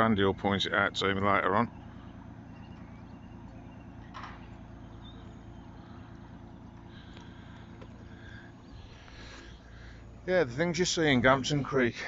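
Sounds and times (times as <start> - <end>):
motorboat engine hum: 0.0 - 12.0.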